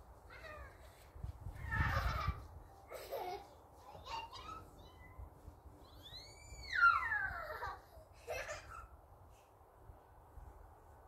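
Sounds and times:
child squealing high-pitched: 0:01.5 - 0:02.4, 0:05.8 - 0:08.9.

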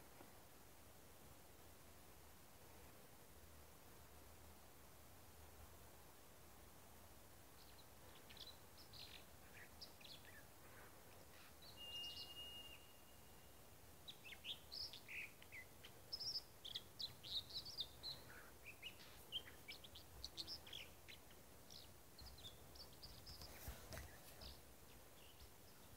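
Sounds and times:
songbirds chirping: 0:00.0 - 0:25.9.

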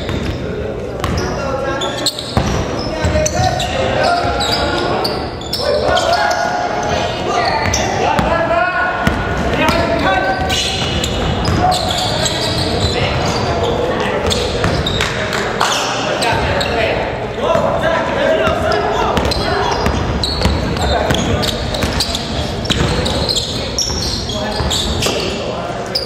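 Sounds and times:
basketball bouncing on wooden floor: 0:01.0 - 0:01.2, 0:02.3 - 0:03.3, 0:18.4 - 0:22.0
players shouting: 0:03.0 - 0:13.5.

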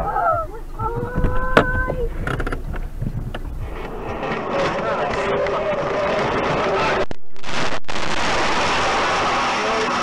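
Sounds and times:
car engine and road noise: 0:00.0 - 0:07.2.

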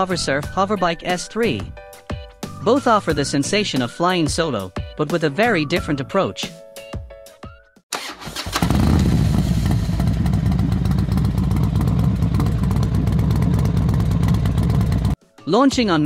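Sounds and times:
motorcycle engine running: 0:08.5 - 0:15.2.

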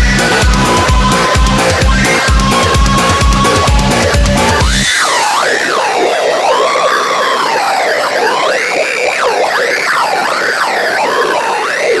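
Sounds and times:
synth tones sliding in pitch: 0:00.0 - 0:12.0.

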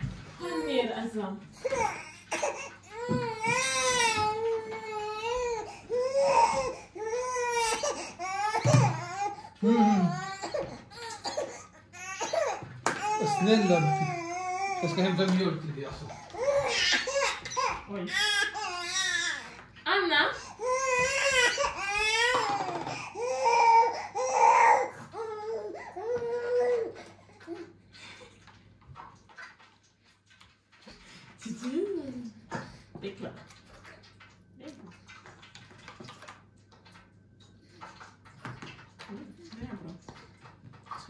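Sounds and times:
baby crying: 0:01.6 - 0:15.2, 0:16.2 - 0:19.5, 0:20.4 - 0:27.0.

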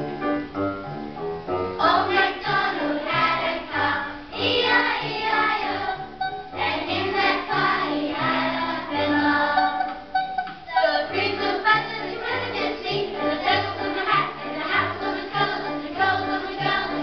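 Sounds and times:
low musical accompaniment: 0:00.0 - 0:17.0
children singing: 0:01.8 - 0:17.0.

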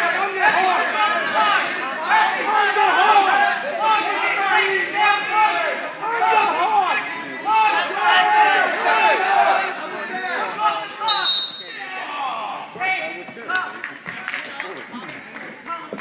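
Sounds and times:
spectators shouting encouragement: 0:00.0 - 0:12.9
high whistle: 0:11.1 - 0:11.9.

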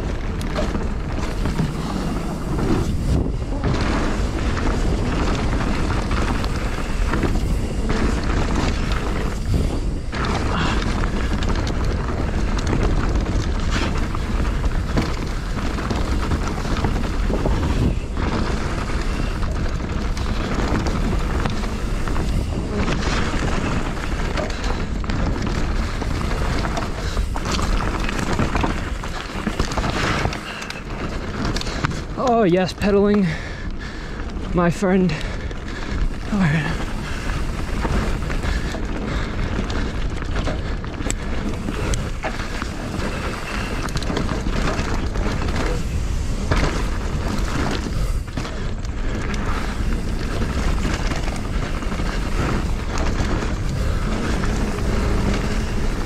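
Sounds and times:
bike rattling and knocking: 0:00.0 - 0:56.0
steady low rumble: 0:00.0 - 0:56.0
wind buffeting microphone: 0:00.0 - 0:56.0.

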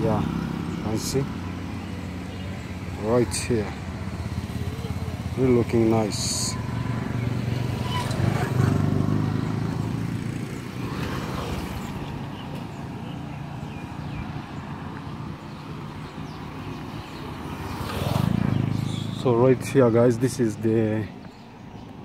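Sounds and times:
motorcycle engine: 0:00.0 - 0:21.4
road traffic: 0:00.0 - 0:22.0.

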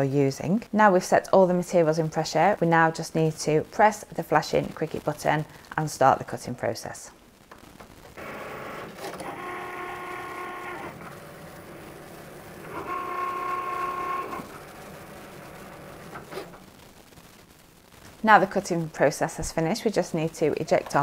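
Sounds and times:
cutting machine motors whining: 0:08.2 - 0:16.6.

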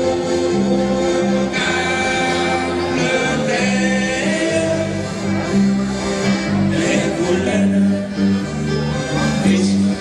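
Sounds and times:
accordion chords: 0:00.0 - 0:10.0
live dance band playing: 0:00.0 - 0:10.0.

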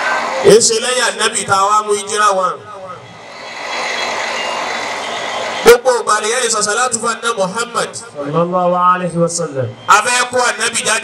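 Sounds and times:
steady rushing noise: 0:00.0 - 0:08.4
man speaking: 0:00.4 - 0:03.0, 0:05.6 - 0:11.0.

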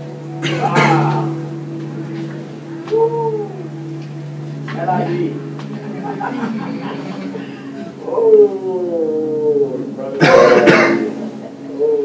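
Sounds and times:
harsh vocal burst: 0:00.4 - 0:01.4.

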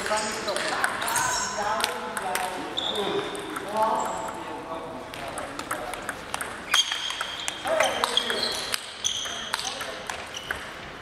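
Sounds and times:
table tennis ball clicking: 0:00.0 - 0:01.1, 0:03.4 - 0:04.4, 0:05.1 - 0:10.7.

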